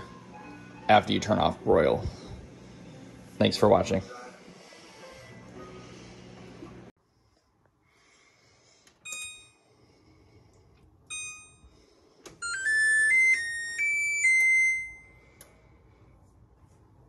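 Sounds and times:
short electronic key beeps: 9.0 - 9.6.

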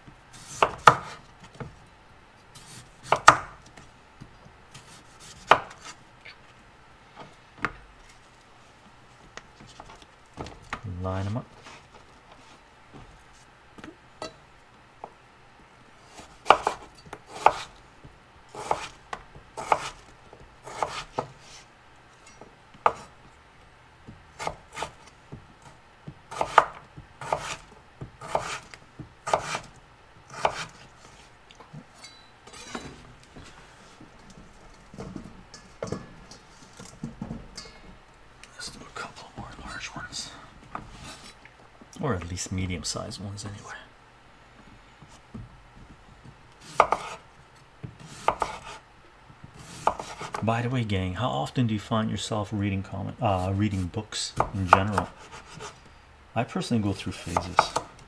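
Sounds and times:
knife chopping on wooden board: 0.5 - 1.2, 2.6 - 3.6, 4.8 - 5.9, 16.4 - 17.7, 18.6 - 19.0, 19.6 - 20.0, 20.6 - 21.4, 26.3 - 29.7, 30.3 - 30.8, 46.6 - 47.2, 48.0 - 48.8, 49.5 - 50.4, 54.4 - 55.7, 57.3 - 57.9.

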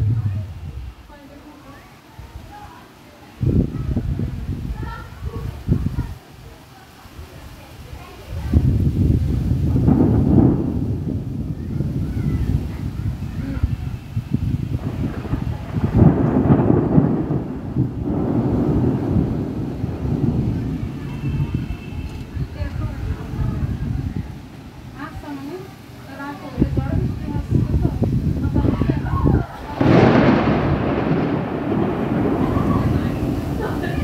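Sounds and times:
thunder rumbling: 0.0 - 1.5, 3.4 - 6.2, 7.9 - 34.0.

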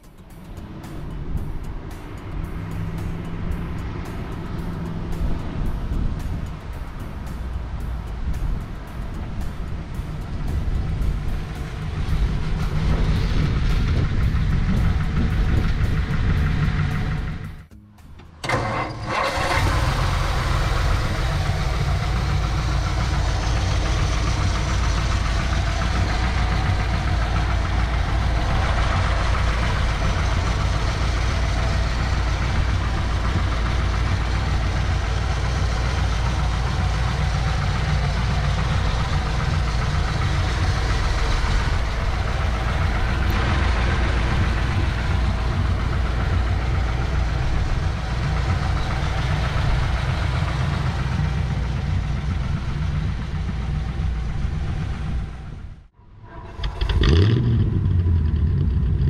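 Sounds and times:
car engine running: 0.0 - 59.0
engine idling: 0.0 - 59.0
engine starting: 18.4 - 21.0, 56.1 - 59.0.

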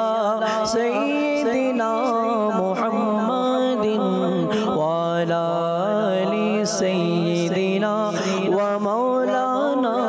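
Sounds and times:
man chanting: 0.0 - 10.0.

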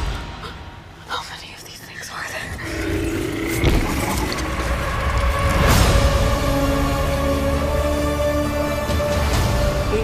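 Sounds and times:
trailer music: 2.1 - 10.0.

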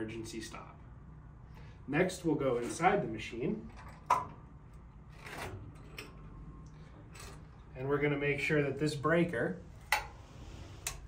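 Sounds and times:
metal door latch scraping: 5.1 - 6.1.

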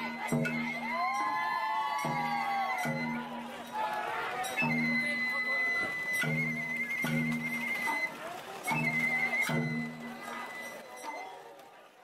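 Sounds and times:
bamboo flute wavering note: 4.4 - 11.3.

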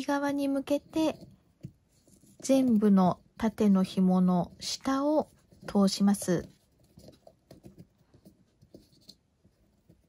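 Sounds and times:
cord rustling and scraping on wood: 0.4 - 10.0.

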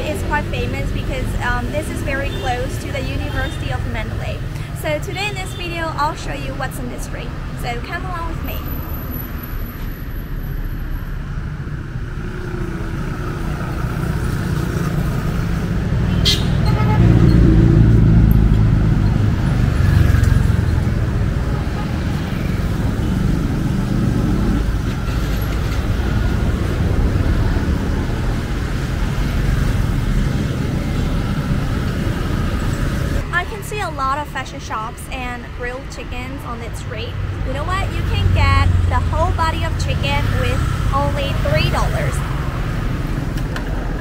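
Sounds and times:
traffic rumble: 0.0 - 44.0.

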